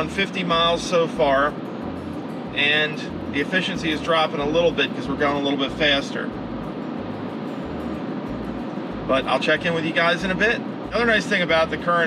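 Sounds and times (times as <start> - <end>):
low uneven rumble: 0.0 - 12.0.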